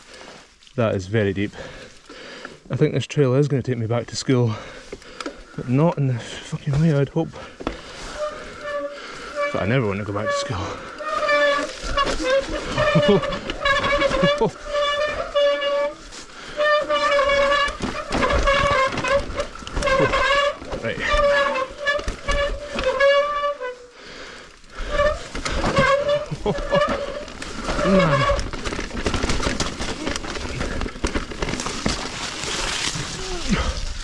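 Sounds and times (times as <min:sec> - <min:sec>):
tyres and frame rattling on dirt: 0:00.0 - 0:34.0
bike disc brakes squealing: 0:08.0 - 0:23.9, 0:24.8 - 0:29.0.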